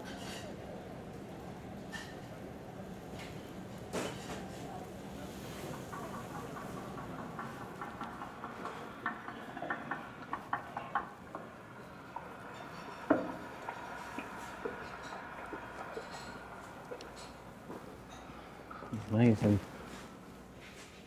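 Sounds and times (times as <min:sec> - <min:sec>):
light irregular clicks and knocks: 0:05.4 - 0:20.0.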